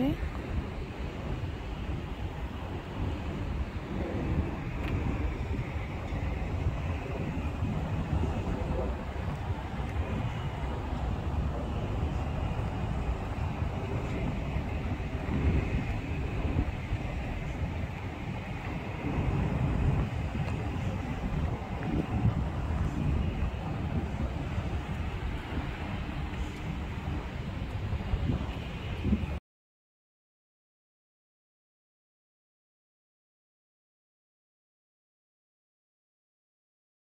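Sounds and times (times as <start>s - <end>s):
outdoor ambience: 0.0s - 29.4s
wind buffeting microphone: 0.0s - 29.4s.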